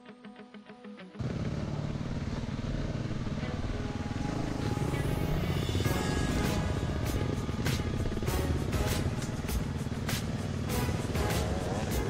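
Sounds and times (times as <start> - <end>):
motorcycle engine droning: 1.2 - 12.0.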